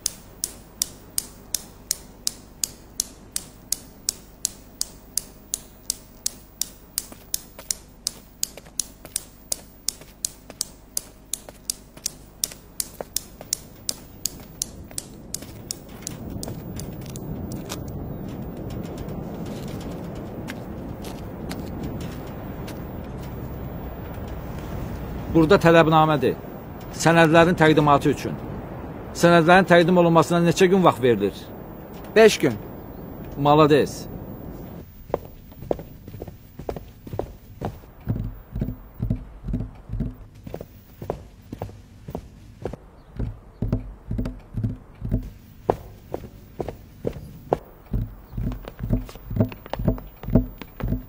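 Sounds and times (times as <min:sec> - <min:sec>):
low rushing noise: 0:12.2 - 0:51.0.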